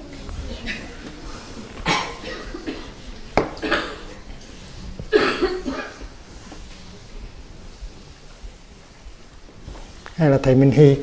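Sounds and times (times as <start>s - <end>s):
short coughs: 1.8s - 3.0s, 3.6s - 4.1s, 5.1s - 6.1s.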